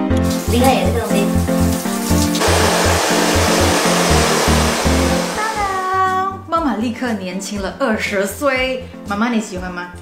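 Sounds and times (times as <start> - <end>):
shower spraying water: 0.0 - 6.0.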